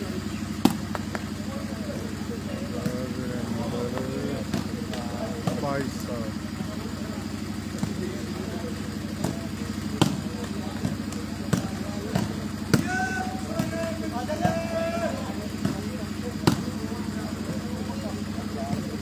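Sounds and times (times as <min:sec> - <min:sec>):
steady low hum: 0:00.0 - 0:19.0
volleyball being struck: 0:00.5 - 0:01.4, 0:04.4 - 0:05.8, 0:07.6 - 0:14.8, 0:15.4 - 0:16.9
people shouting: 0:09.2 - 0:17.2.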